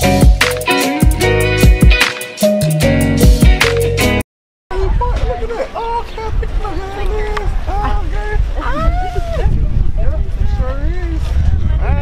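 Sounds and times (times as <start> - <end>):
people talking in a group: 4.7 - 12.0.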